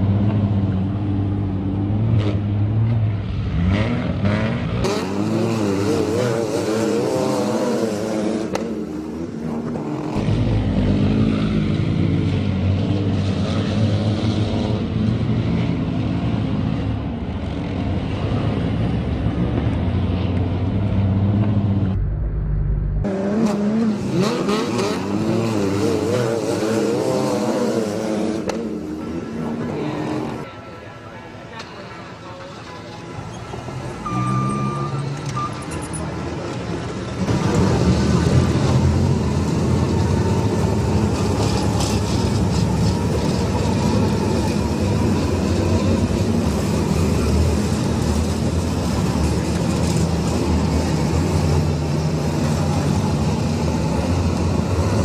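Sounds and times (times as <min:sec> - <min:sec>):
race car engines: 0:00.0 - 0:55.0.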